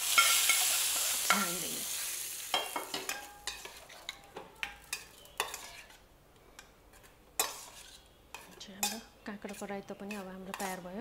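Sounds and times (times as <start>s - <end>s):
hot oil sizzling: 0.0s - 4.1s
metal spoon scraping and tapping: 0.1s - 1.5s, 2.6s - 6.0s, 6.6s - 11.0s.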